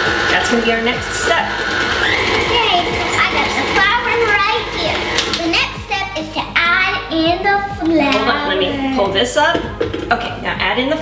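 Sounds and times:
stand mixer motor humming: 0.0s - 5.9s.

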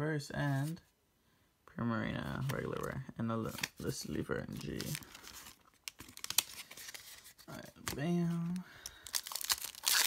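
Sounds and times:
trading cards clicking and rustling: 2.4s - 10.0s.

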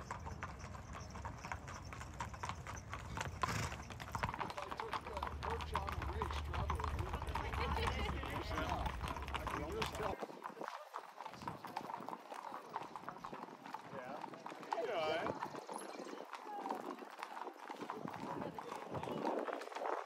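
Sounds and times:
horse hooves on pavement: 0.0s - 20.0s
people's voices: 4.1s - 19.9s.

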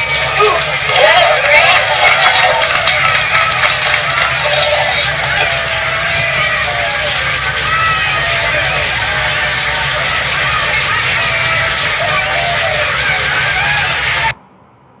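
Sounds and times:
applause: 0.0s - 14.4s
crowd cheering: 0.0s - 14.4s.

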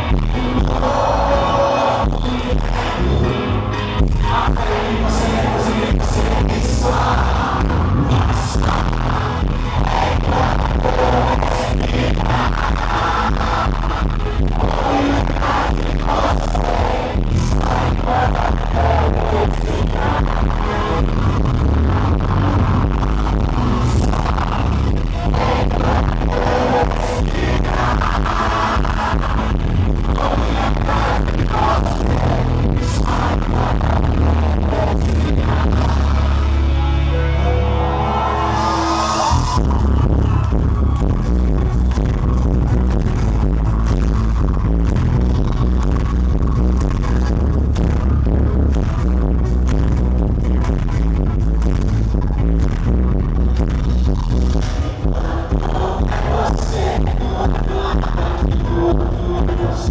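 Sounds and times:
live band playing loudly: 0.0s - 59.9s.

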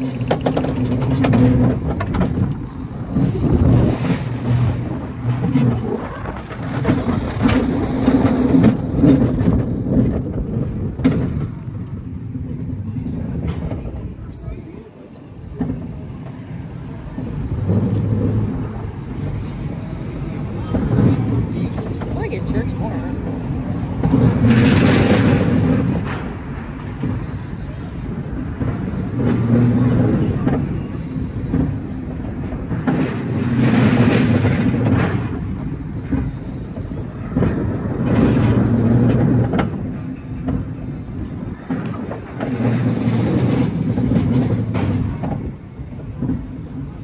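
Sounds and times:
roller coaster rumbling on track: 0.0s - 47.0s.

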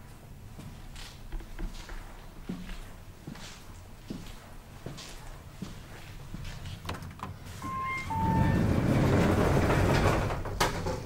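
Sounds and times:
elevator doors sliding open: 6.9s - 11.0s
two-note elevator arrival chime: 7.6s - 8.9s.

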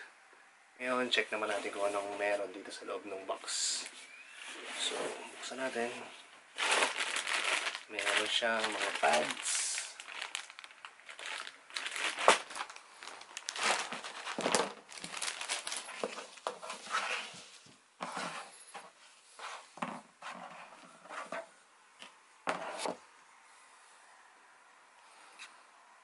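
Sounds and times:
plastic bag crinkling: 5.5s - 17.4s.

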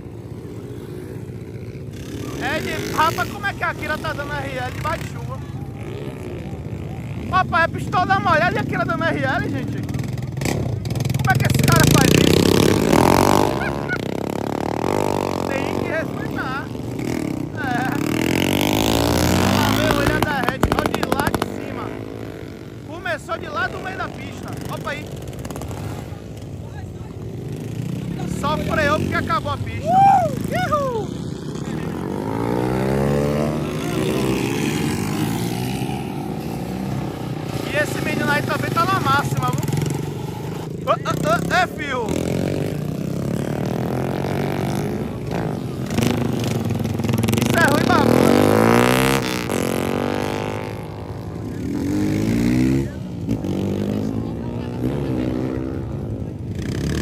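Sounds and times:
small motorcycles revving and passing: 0.0s - 57.0s.

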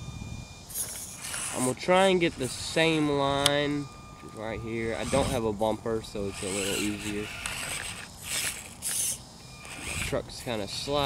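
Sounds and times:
small electric motor whirring: 0.0s - 11.0s.

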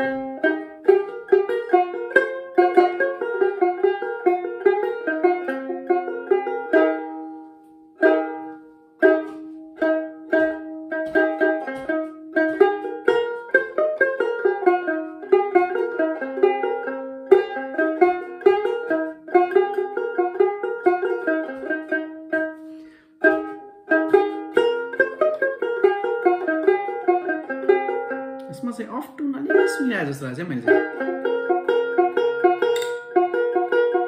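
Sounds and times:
plucked lute melody: 0.0s - 34.0s
person speaking: 28.4s - 30.8s.

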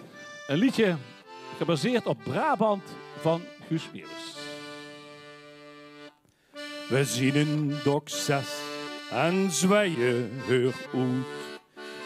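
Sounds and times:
accordion chord: 0.0s - 12.0s
person singing: 6.9s - 11.6s.

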